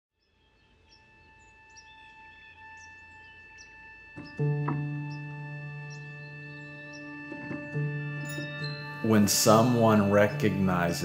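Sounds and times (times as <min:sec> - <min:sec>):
small birds chirping: 0:00.2 - 0:10.4.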